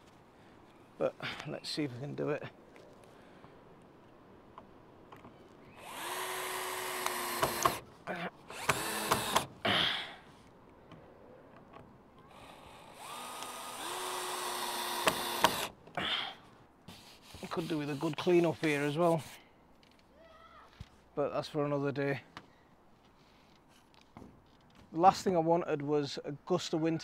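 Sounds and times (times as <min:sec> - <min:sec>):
cordless drill driving into wood: 0:05.8 - 0:07.8, 0:08.5 - 0:09.6, 0:12.3 - 0:15.8.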